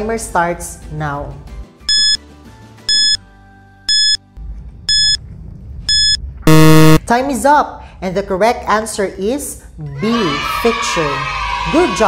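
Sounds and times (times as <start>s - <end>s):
faint background music: 0.0s - 5.8s, 7.0s - 12.0s
countdown timer beeps: 1.9s - 2.2s, 2.9s - 3.2s, 3.9s - 4.2s, 4.9s - 5.2s, 5.9s - 7.0s.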